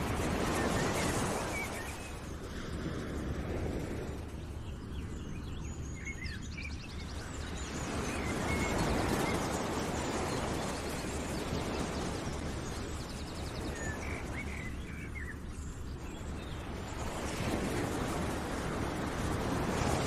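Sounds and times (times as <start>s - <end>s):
steady rushing noise: 0.0s - 20.0s.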